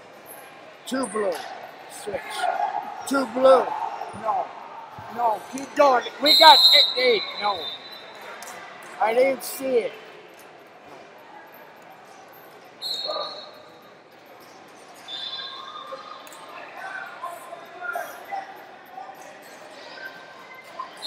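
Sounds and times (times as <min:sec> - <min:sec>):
distant voices in a hall: 0:00.0 - 0:21.0
referee whistle blasts: 0:06.2 - 0:08.2, 0:12.8 - 0:13.4.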